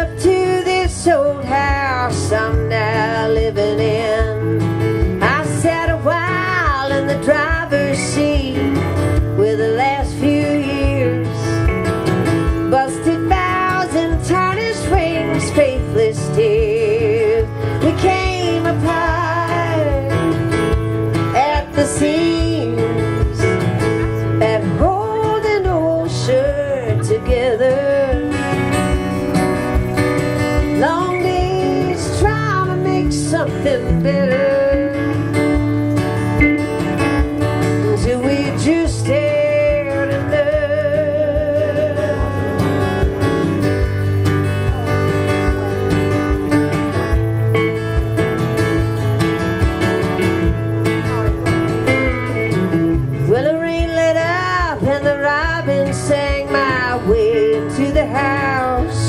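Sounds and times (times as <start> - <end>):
acoustic guitar strumming: 0.0 - 59.0
electric guitar lead lines: 0.0 - 59.0.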